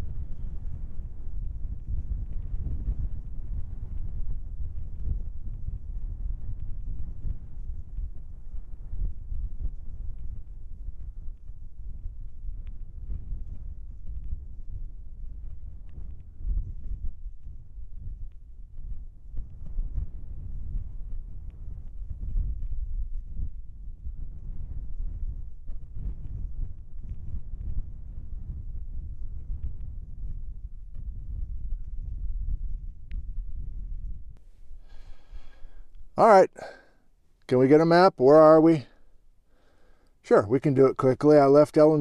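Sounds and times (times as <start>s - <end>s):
wind buffeting microphone: 0.0s - 36.8s.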